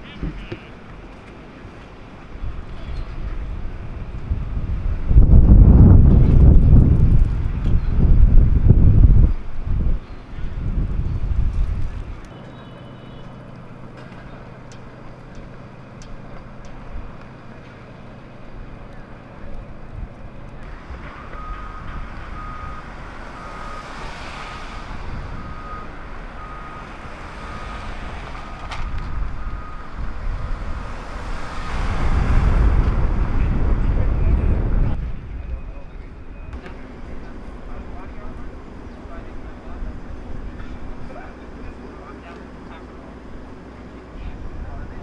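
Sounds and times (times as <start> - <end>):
city street traffic hum: 0.0 - 45.0
reversing alarm beeping: 20.7 - 31.1
loud vehicle passing close: 20.7 - 35.3
car driving past: 20.8 - 34.9.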